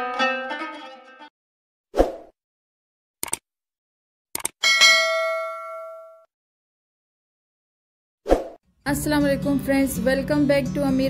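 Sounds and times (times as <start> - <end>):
notification bell ding: 4.6 - 6.3.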